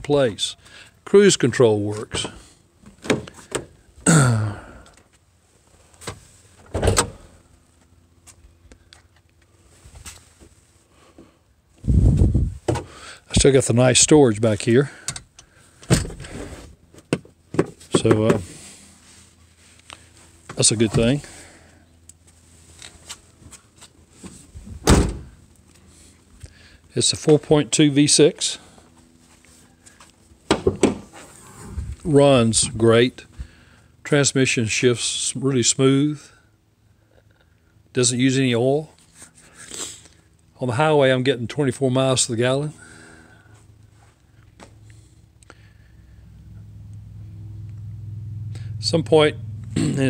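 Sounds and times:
pickup truck door slamming: 24.8 - 25.3
low rumble: 45.8 - 50.0.

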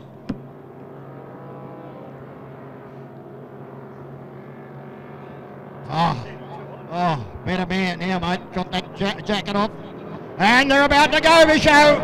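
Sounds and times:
powerboat engines droning: 0.0 - 12.0.

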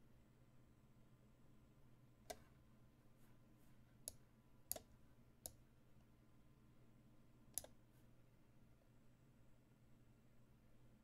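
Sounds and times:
computer mouse clicks: 2.3 - 2.5, 4.0 - 5.6, 7.5 - 7.8.

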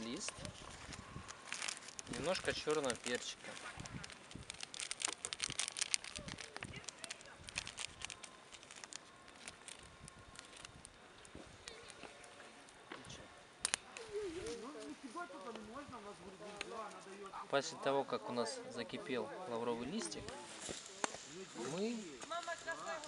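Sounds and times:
sachet crinkling: 0.0 - 12.8, 19.9 - 23.0
porridge boiling: 0.0 - 13.8
campfire crackling: 0.0 - 23.0.

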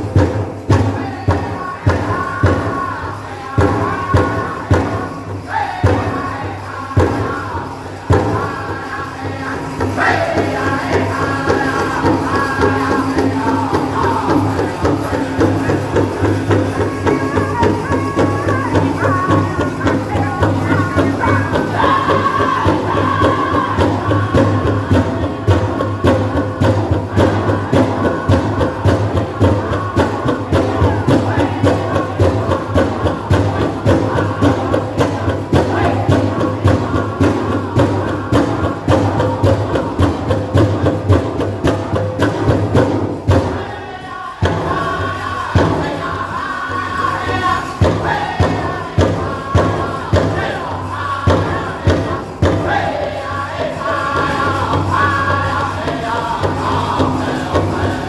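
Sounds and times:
big drum steady beat: 0.0 - 58.0
group singing: 0.0 - 58.0.

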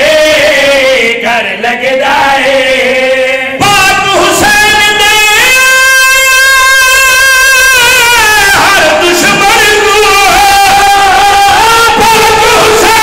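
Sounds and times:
man singing through microphone: 0.0 - 13.0.

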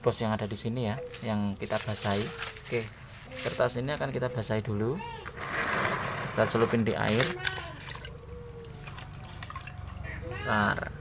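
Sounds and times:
water dripping: 7.1 - 10.2.

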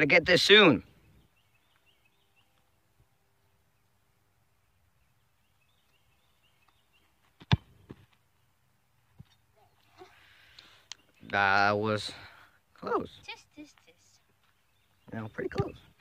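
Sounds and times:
soccer ball kicked: 7.4 - 8.0.

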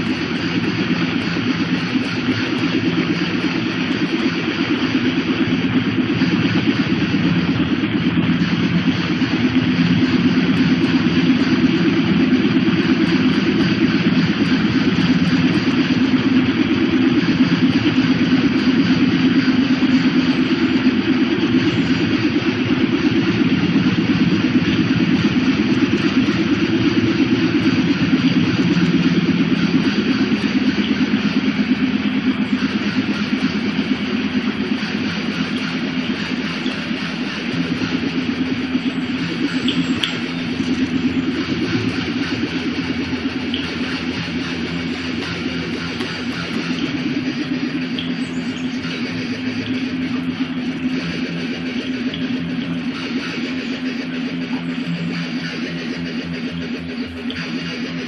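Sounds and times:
low rumbling noise drone: 0.0 - 58.0.

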